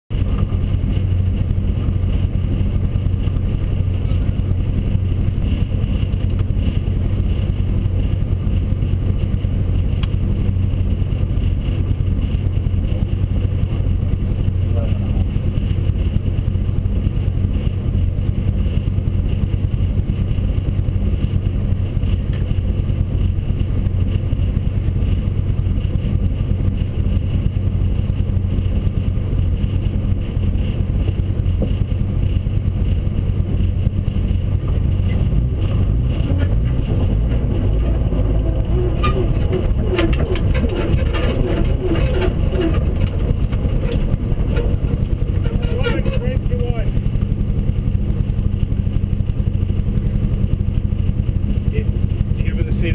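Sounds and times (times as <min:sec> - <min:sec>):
car engine idling: 0:00.1 - 0:52.9.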